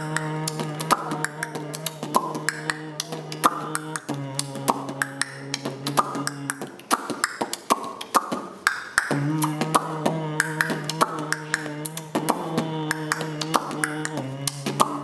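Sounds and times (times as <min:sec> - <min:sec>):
beatbox clicks and slaps: 0:00.0 - 0:15.0.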